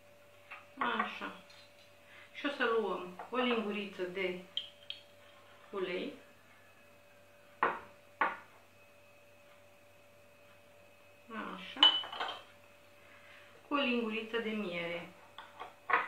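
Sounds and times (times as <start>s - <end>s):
teaspoon clinking on glass bowls: 4.6s - 5.1s, 11.8s - 12.5s.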